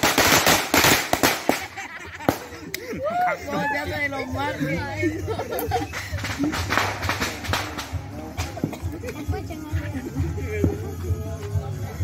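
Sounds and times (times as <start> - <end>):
firecrackers cracking: 0.0 - 2.9, 5.4 - 10.0.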